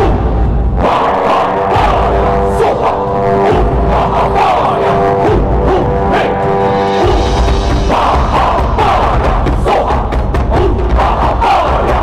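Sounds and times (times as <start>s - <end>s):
voices chanting: 0.0s - 12.0s.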